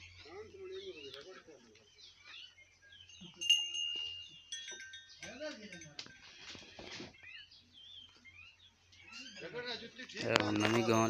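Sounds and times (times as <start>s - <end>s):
small metal bell ringing: 2.9s - 6.8s, 10.2s - 11.0s.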